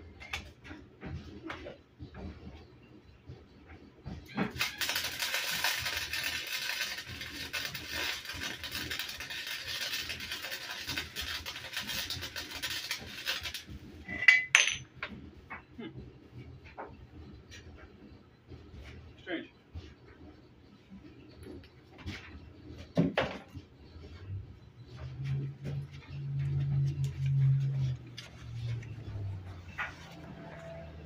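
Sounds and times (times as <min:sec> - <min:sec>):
welding arc crackling: 0:04.4 - 0:14.0.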